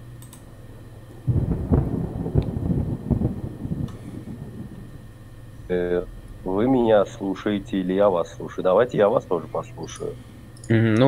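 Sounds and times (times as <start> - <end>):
rolling thunder: 1.2 - 9.0.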